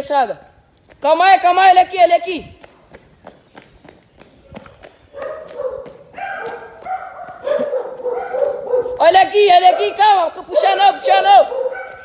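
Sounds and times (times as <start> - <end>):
footsteps on pavement: 0.0 - 12.0
dog barking: 5.1 - 12.0.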